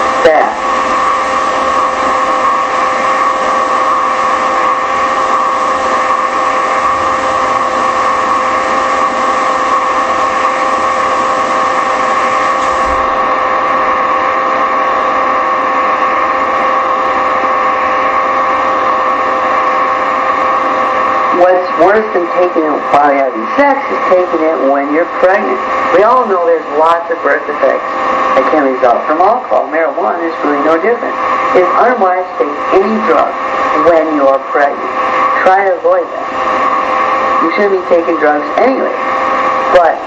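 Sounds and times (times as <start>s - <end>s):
loud steady hum: 0.0s - 40.0s.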